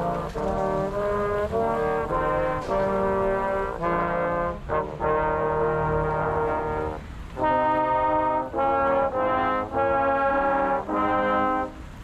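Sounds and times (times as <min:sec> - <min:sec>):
brass instruments playing: 0:00.0 - 0:12.0.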